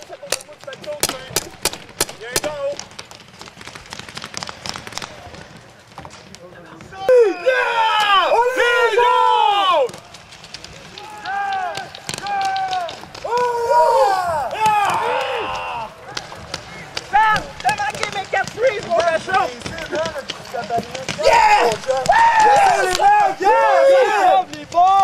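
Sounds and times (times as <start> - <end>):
people shouting: 7.0 - 10.1, 10.8 - 19.9, 20.8 - 25.0.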